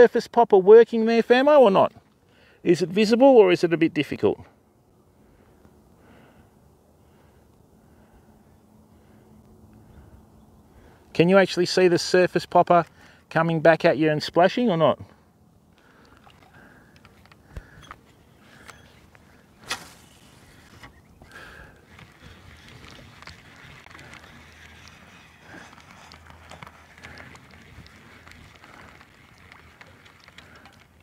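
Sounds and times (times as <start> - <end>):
shallow water lapping: 15.6 - 31.0.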